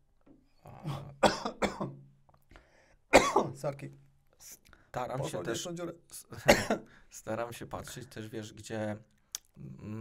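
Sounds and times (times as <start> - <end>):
man coughing hard: 0.8 - 2.0, 3.1 - 3.6, 6.4 - 6.9.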